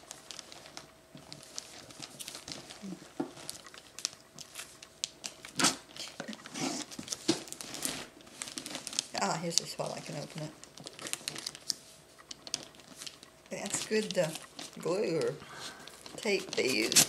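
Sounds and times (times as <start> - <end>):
wrapping paper crinkling and tearing: 0.0 - 17.0.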